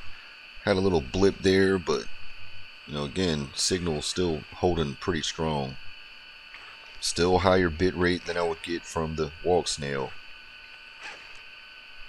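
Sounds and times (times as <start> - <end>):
high-pitched hum: 0.0 - 12.0.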